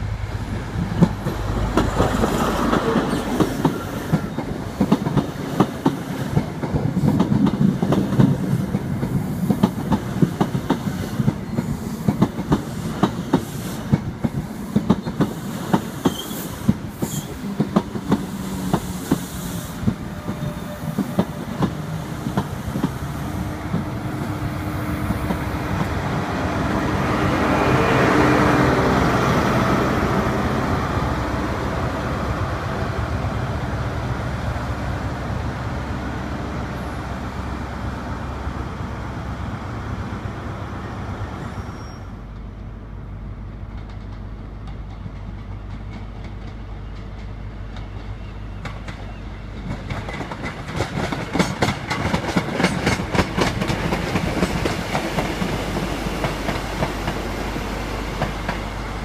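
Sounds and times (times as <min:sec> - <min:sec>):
train wheels clattering over rail joints: 0:00.9 - 0:24.4, 0:43.7 - 0:57.3.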